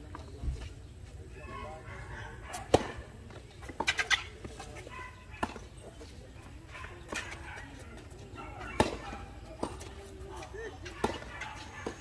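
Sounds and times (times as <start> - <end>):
tennis ball bouncing: 8.8 - 10.2, 10.9 - 12.0.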